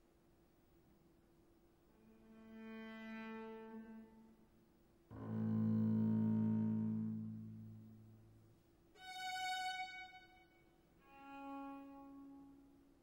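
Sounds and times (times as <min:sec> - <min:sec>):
orchestra holding low notes: 0:05.1 - 0:08.2.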